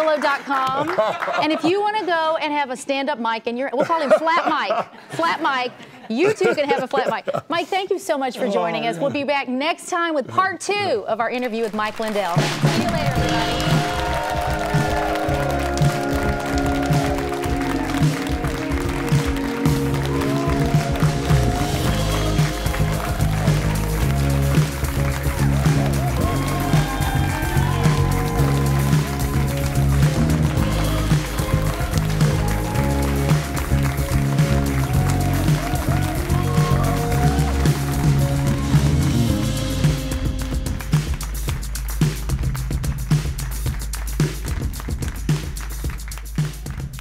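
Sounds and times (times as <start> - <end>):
band playing closing music: 12.4 - 42.4.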